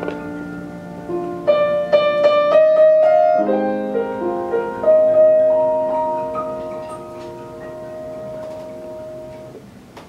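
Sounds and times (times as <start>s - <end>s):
grand piano chord ringing: 0.0s - 9.6s
soft high piano notes: 0.0s - 9.7s.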